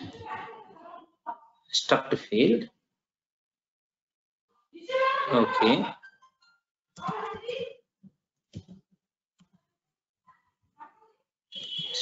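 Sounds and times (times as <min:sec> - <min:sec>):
man speaking: 0:01.7 - 0:02.7, 0:05.3 - 0:06.0.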